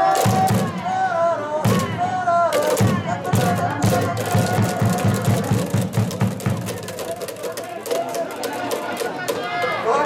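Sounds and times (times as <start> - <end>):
crowd clapping in rhythm: 0.0 - 0.8, 3.4 - 9.5
crowd voices: 0.0 - 10.0.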